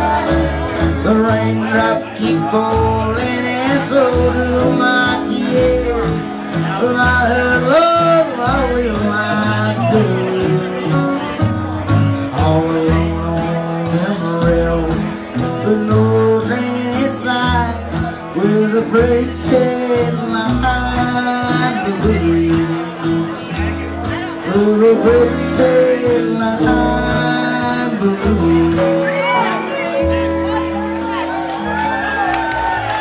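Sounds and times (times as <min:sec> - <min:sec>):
bass line: 0:00.0 - 0:33.0
country band playing: 0:00.0 - 0:33.0
guitars picking melody: 0:00.0 - 0:33.0.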